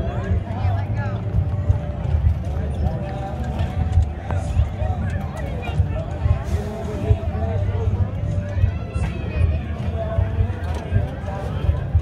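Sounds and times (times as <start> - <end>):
crowd chatter: 0.0 - 12.0
steady low rumble: 0.0 - 12.0.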